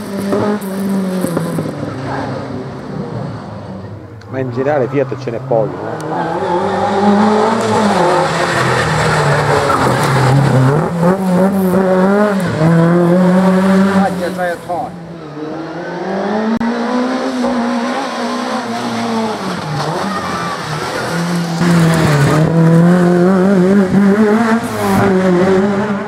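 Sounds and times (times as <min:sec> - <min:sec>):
race car engine revving: 0:00.0 - 0:26.0.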